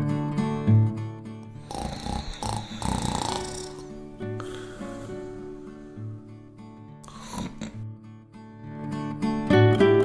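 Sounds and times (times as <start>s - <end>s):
guitar music: 0.0s - 10.0s
person snoring: 1.5s - 6.2s, 7.0s - 7.8s.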